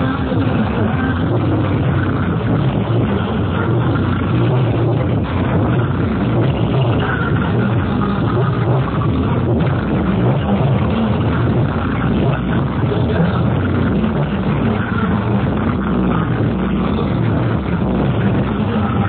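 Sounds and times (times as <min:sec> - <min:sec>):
bass-heavy electronic dance music: 0:00.0 - 0:19.0.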